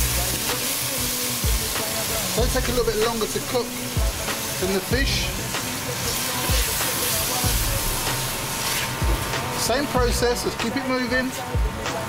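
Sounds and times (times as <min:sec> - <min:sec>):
onions sizzling in oil: 0:00.0 - 0:11.4.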